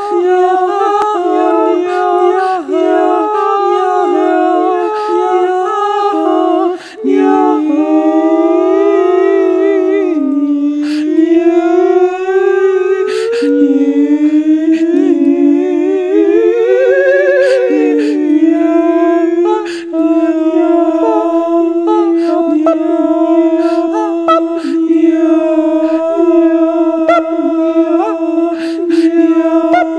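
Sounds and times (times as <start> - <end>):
voices singing without words: 0.0 - 29.9.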